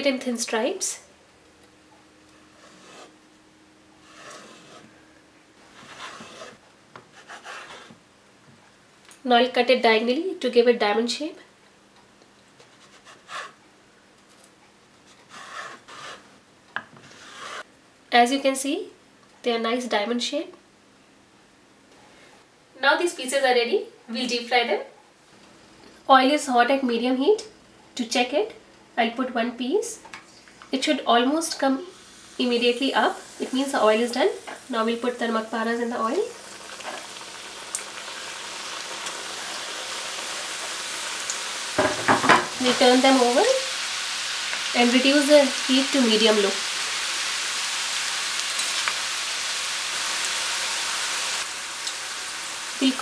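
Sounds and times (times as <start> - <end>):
knife scraping through dough: 2.5 - 3.2, 4.0 - 4.9, 5.7 - 8.0, 15.1 - 16.3, 17.0 - 17.7
oil sizzling while deep-frying: 31.4 - 53.0.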